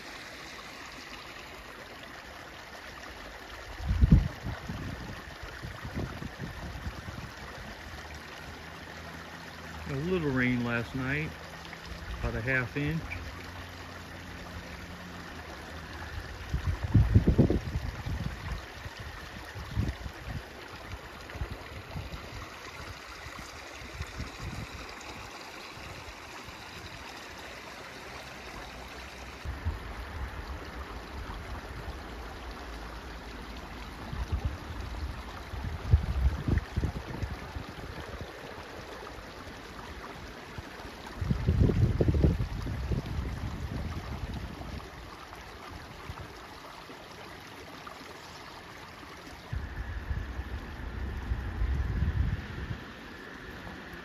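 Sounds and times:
creek running and trickling: 0:00.0 - 0:54.0.

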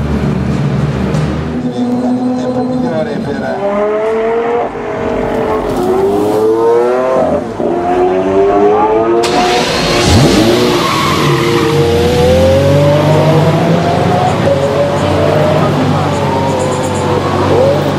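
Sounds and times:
car engine revving hard: 0:03.5 - 0:17.9.

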